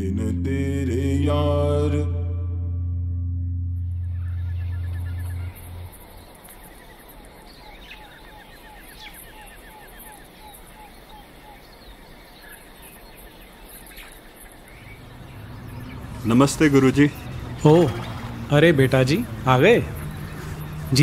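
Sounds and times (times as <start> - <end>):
low chanted drone: 0.0 - 6.4
birds chirping: 3.8 - 21.0.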